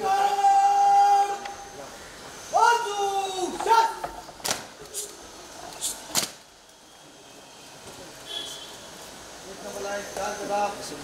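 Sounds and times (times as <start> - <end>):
faint crowd hubbub: 0.0 - 11.0.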